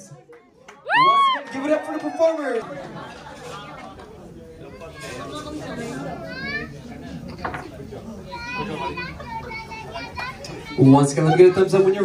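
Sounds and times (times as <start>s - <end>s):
crowd chatter: 0.0s - 12.0s
children talking: 1.6s - 12.0s.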